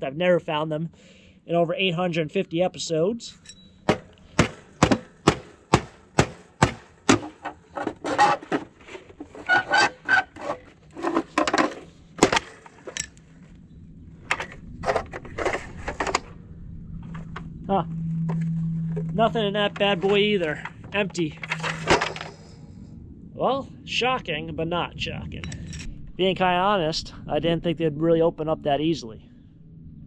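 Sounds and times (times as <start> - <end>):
hatchet knocking on metal box: 3.9 - 7.3
box clattering as pried open: 3.9 - 13.1, 21.4 - 22.3.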